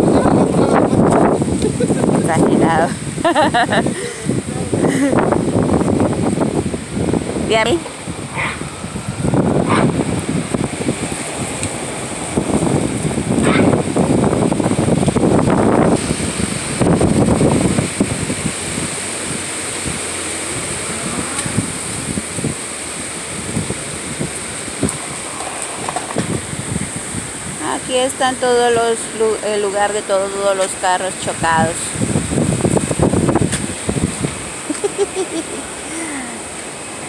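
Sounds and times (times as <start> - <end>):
gusty wind buffeting microphone: 0.0 - 37.0.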